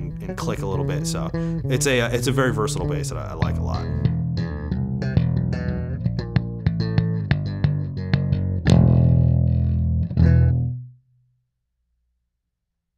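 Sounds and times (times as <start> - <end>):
electric bass playing funky run: 0.0 - 11.0.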